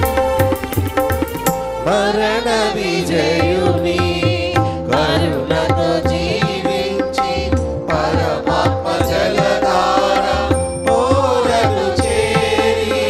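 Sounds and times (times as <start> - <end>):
tabla strokes: 0.0 - 13.0
choir singing a hymn: 1.8 - 13.0.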